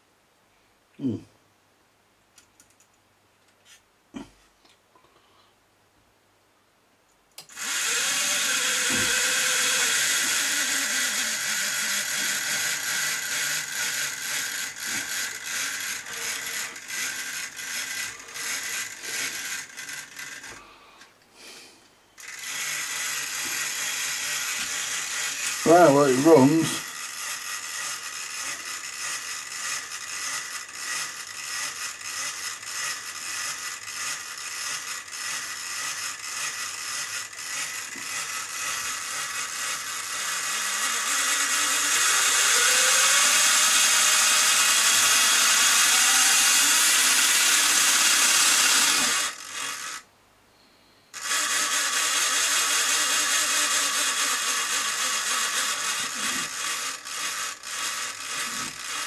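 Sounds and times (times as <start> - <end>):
small electric motor buzzing whine: 7.4 - 21.6, 22.2 - 50.1, 51.1 - 59.0.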